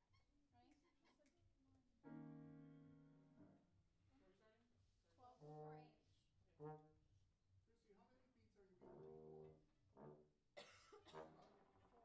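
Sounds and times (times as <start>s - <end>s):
faint brass instrument notes: 5.3s - 7.0s, 8.7s - 10.4s, 11.0s - 12.0s
person coughing: 10.6s - 11.3s.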